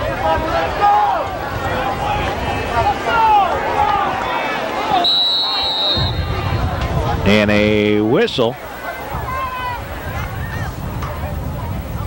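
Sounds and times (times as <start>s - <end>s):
indistinct voices talking: 0.0s - 12.0s
commentary: 6.0s - 10.8s.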